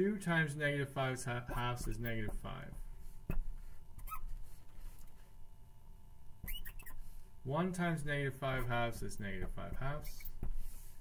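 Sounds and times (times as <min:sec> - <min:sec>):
faint steady hum: 0:00.0 - 0:11.0
marker squeaking on glass board: 0:03.3 - 0:04.6, 0:06.4 - 0:07.2, 0:09.7 - 0:10.8.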